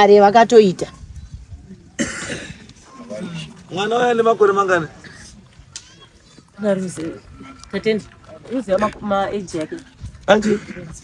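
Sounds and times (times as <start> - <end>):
person coughing: 2.0 - 2.6.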